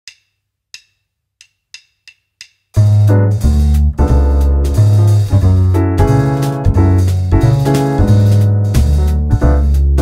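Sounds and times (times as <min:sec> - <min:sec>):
wood block count-in clicks: 0:00.1 - 0:02.6.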